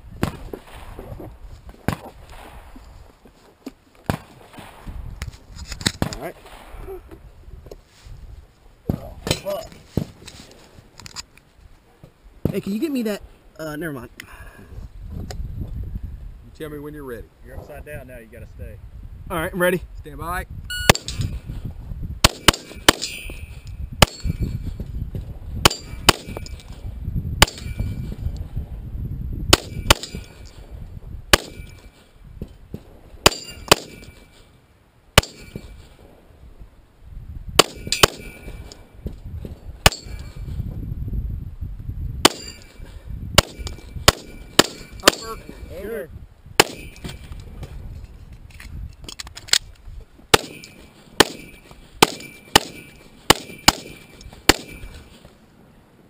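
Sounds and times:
handgun shots: 0:33.3 - 0:34.1, 0:43.4 - 0:45.3, 0:46.6 - 0:46.9, 0:50.3 - 0:55.0
ring of steel target hit: 0:39.8 - 0:40.4, 0:42.3 - 0:42.8.

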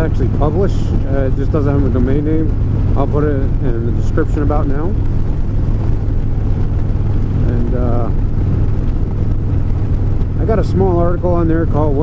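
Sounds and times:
motorcycle engine rumble: 0:00.0 - 0:12.0
wind noise on microphone: 0:00.0 - 0:12.0.

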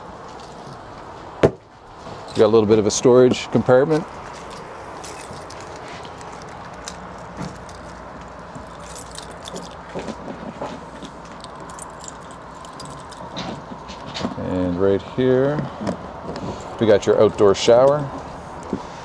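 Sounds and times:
steady background noise: 0:00.0 - 0:19.0
keys jangling: 0:04.5 - 0:10.2, 0:11.0 - 0:14.3, 0:16.6 - 0:17.0
key working in lock: 0:05.0 - 0:10.1, 0:11.0 - 0:13.6.

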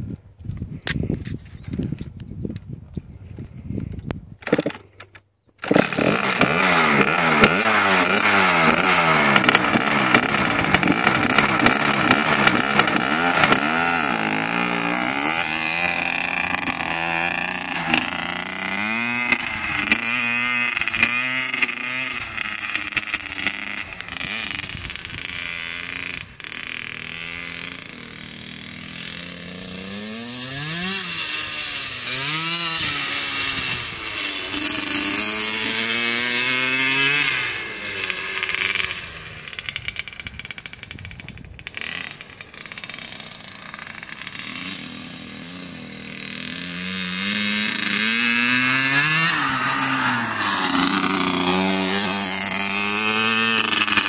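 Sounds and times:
dirt bike engine revving: 0:05.6 - 0:54.0.

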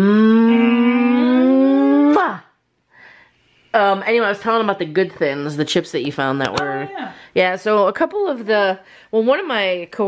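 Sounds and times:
woman humming: 0:00.0 - 0:02.6.

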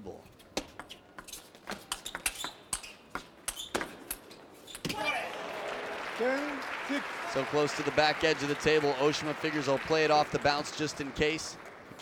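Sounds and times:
crowd applauding: 0:05.1 - 0:12.0.

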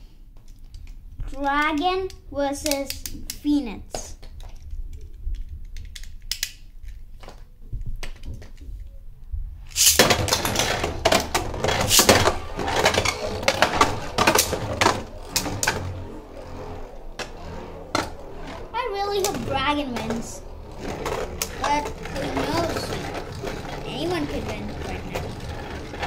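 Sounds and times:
spinning tops rattling and clashing: 0:09.7 - 0:26.0.

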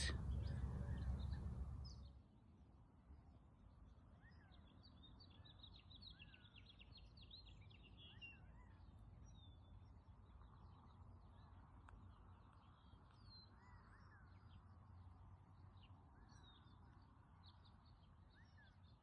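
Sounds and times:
small birds chirping: 0:00.0 - 0:02.1.

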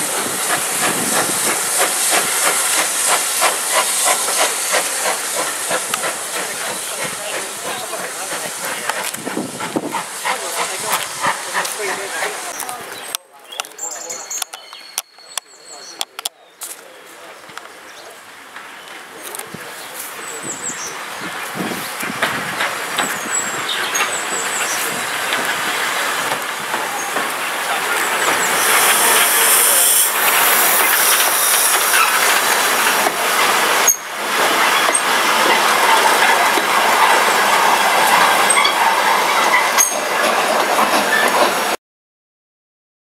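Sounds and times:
steam hissing: 0:00.0 - 0:13.1, 0:19.6 - 0:41.7
steam locomotive approaching: 0:00.0 - 0:13.2, 0:17.0 - 0:41.8
wheels clicking over rail joints: 0:22.0 - 0:41.7.

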